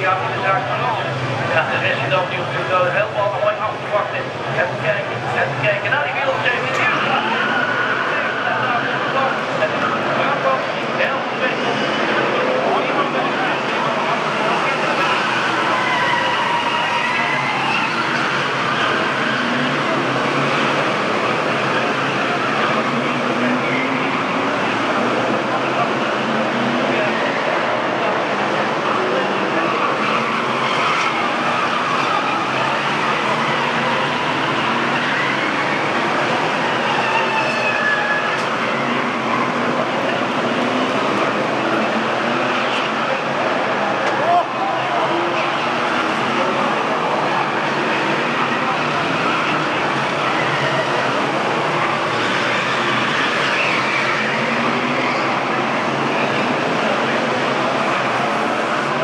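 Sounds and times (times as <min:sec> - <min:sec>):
racing car engines passing: 0:00.0 - 0:59.0.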